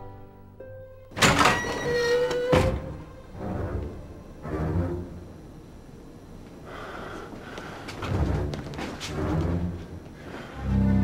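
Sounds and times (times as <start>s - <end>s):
door banging open: 1.1s - 3.1s
door squeak: 1.2s - 3.8s.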